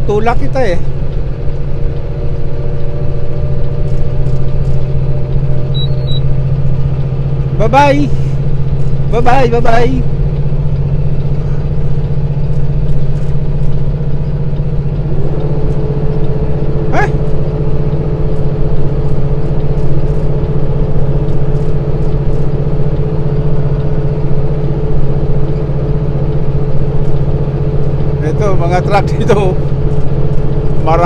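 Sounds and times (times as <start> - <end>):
diesel engine droning: 0.0 - 31.0
road noise: 0.0 - 31.0
steady whine: 0.0 - 31.0
rising chirp: 5.6 - 6.4.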